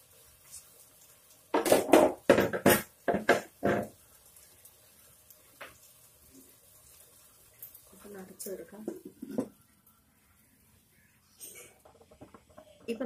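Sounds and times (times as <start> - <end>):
kitchen utensils knocking: 1.6 - 3.9.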